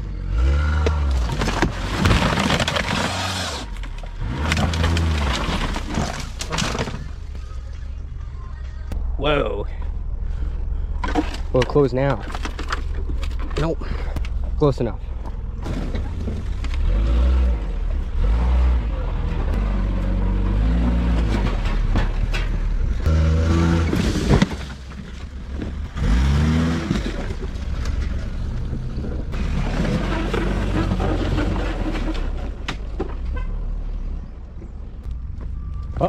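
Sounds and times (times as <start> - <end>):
car engine revving: 16.7 - 22.1, 22.8 - 24.3, 25.8 - 32.4.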